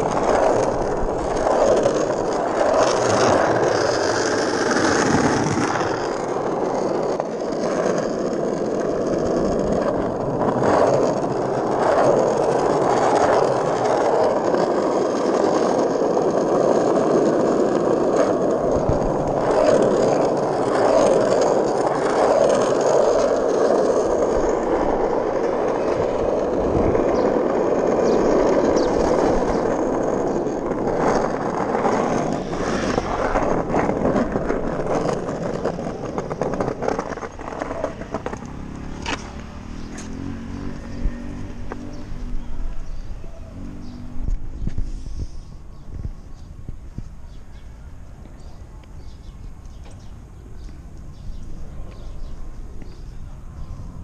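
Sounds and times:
skateboard wheels rolling on asphalt: 0.0s - 54.0s.

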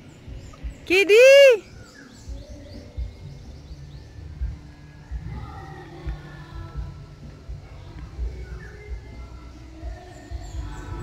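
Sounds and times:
birds chirping: 0.0s - 11.0s.

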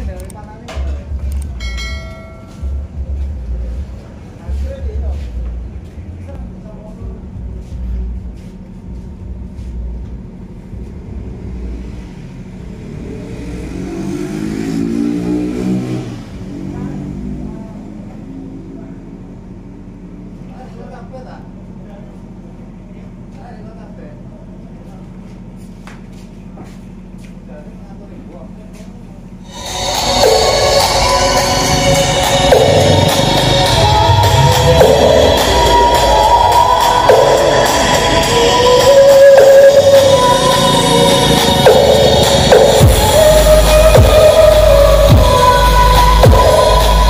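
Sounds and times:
steady low hum: 0.0s - 13.3s, 18.6s - 47.0s
vehicle engine passing: 0.0s - 20.5s, 29.1s - 47.0s
loud music from sound system: 29.5s - 47.0s.

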